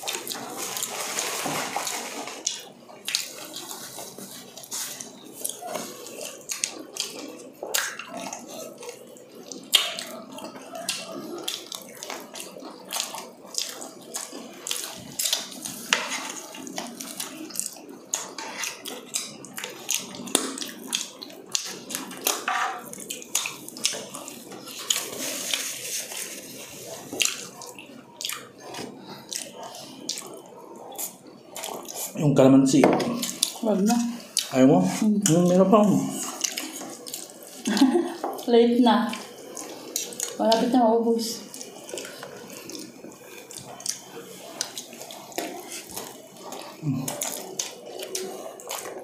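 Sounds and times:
people chewing crunchy food: 0:00.0 - 0:49.0
wet mouth noises: 0:33.0 - 0:49.0.

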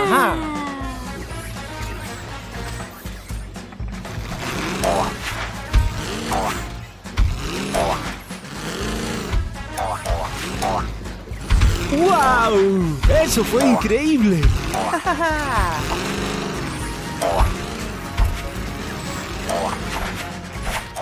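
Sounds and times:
cartoon music with gliding notes: 0:00.0 - 0:21.0.

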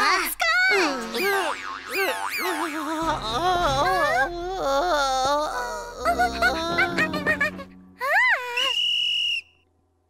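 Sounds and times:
cartoon music notes: 0:06.0 - 0:08.1.

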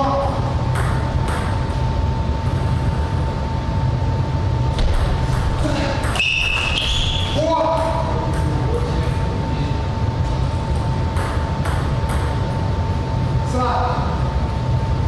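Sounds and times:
steady hall hum: 0:00.0 - 0:15.0
shoe squeaks: 0:06.1 - 0:07.6.

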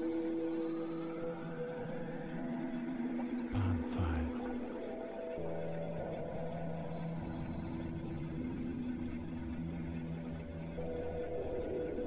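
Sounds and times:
ambient droning music: 0:00.0 - 0:12.0.

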